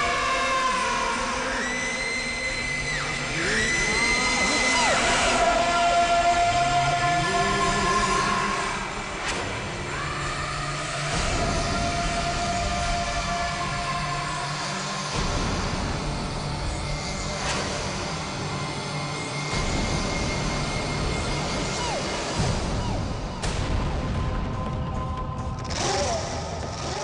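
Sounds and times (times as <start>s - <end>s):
dramatic music with low drone: 0.0s - 27.0s.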